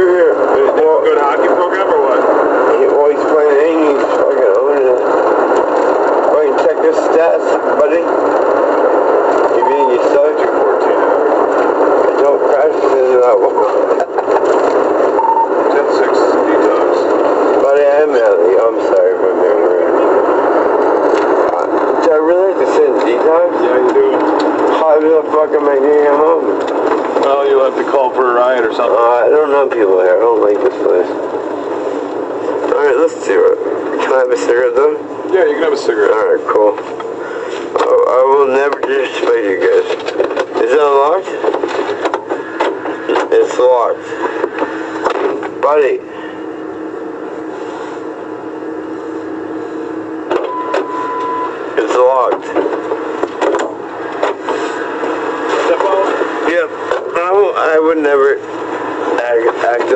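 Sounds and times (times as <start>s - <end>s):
muffled indistinct talking: 0.0s - 48.3s, 51.5s - 59.9s.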